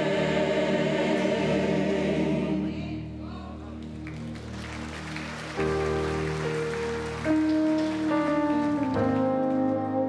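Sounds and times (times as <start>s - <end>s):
worship music with singing: 0.0s - 4.2s.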